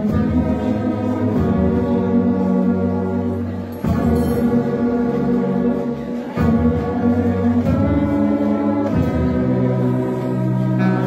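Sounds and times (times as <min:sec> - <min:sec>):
brass band playing a slow hymn: 0:00.0 - 0:11.0.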